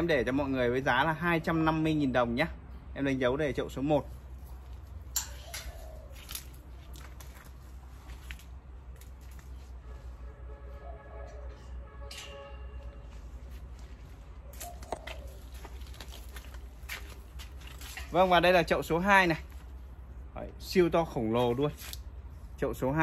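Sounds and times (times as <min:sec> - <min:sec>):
rustling: 0:13.1 - 0:18.5.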